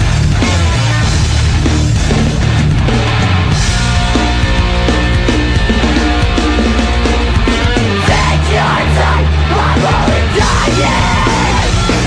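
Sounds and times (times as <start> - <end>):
heavy rock song: 0.0 - 12.0
yelled vocal: 7.9 - 12.0.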